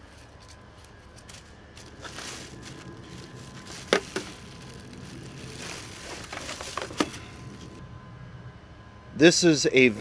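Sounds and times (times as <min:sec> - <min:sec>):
packing and cardboard rustling: 0:00.0 - 0:07.8
low background rumble: 0:01.4 - 0:09.1.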